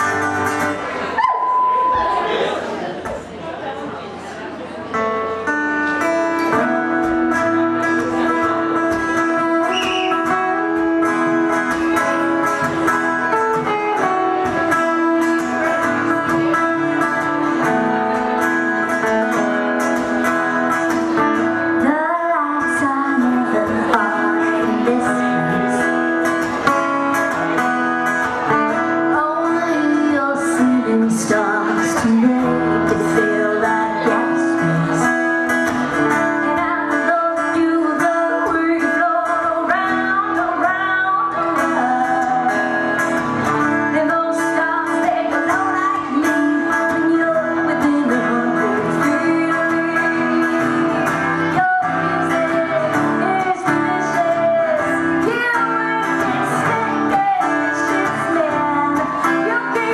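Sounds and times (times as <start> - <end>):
acoustic guitars strummed and picked: 0.0 - 3.3, 4.0 - 59.9
woman singing: 6.0 - 27.3, 28.2 - 59.9.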